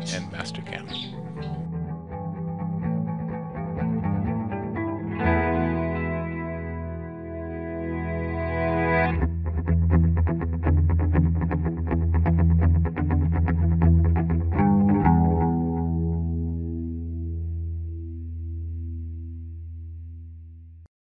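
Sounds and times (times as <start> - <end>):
instrumental outro music: 0.0 - 20.2.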